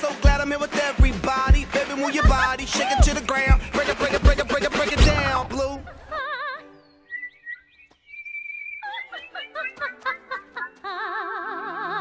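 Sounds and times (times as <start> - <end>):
small birds chirping: 6.7 - 10.1
bird warbling whistle: 6.8 - 9.4.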